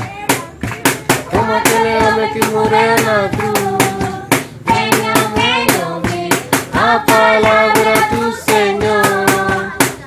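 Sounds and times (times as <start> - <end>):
rhythmic hand-clapping: 0.0 - 10.0
children singing a hymn: 1.4 - 9.9.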